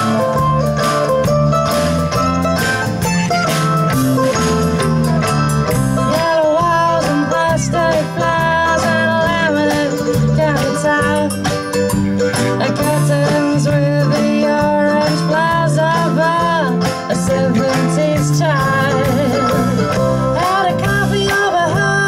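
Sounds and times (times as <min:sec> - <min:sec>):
bass guitar: 0:00.0 - 0:22.0
drums: 0:00.0 - 0:22.0
mandolin: 0:00.0 - 0:22.0
strummed acoustic guitar: 0:00.0 - 0:22.0
woman singing: 0:06.0 - 0:11.5, 0:12.6 - 0:19.7, 0:20.3 - 0:22.0.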